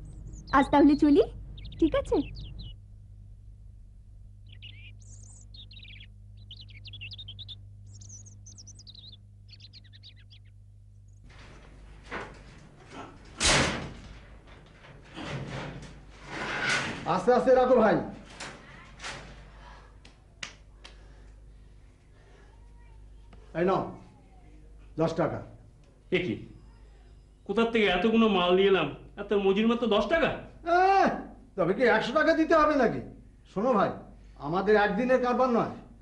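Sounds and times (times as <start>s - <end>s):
small birds chirping: 0.0s - 2.9s, 4.4s - 11.7s, 22.0s - 25.0s, 25.9s - 30.2s
low hum: 0.0s - 16.9s.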